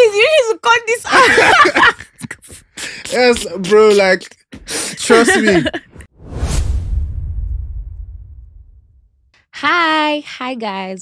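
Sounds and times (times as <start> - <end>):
deep rumble: 6.2 - 9.3
whoosh: 6.2 - 9.3.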